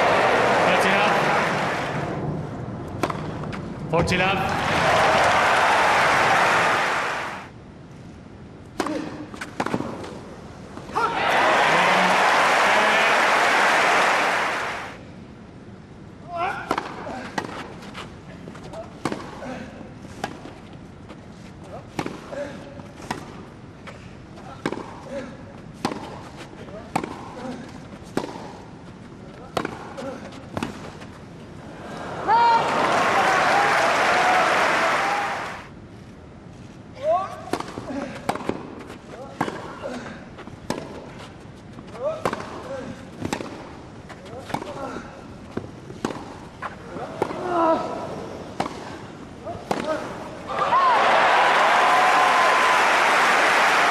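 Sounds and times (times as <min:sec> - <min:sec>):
crowd applauding and cheering: 0:00.0 - 0:02.1, 0:04.5 - 0:07.5, 0:11.2 - 0:15.0, 0:32.6 - 0:35.7, 0:50.5 - 0:53.9
racket hitting tennis ball: 0:03.0 - 0:03.5, 0:21.9 - 0:22.3, 0:24.6 - 0:25.0, 0:25.8 - 0:28.7, 0:29.5 - 0:31.1, 0:37.5 - 0:41.2, 0:42.0 - 0:47.4, 0:48.5 - 0:50.3.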